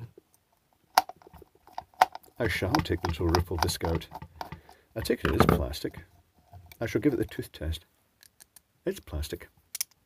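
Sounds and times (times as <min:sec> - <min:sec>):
screwdriver clicking on plastic: 0:01.0 - 0:05.2.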